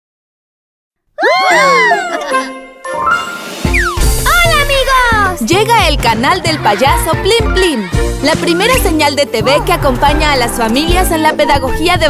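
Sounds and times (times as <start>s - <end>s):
children's music: 1.3s - 12.0s
falling whistle: 3.6s - 4.1s.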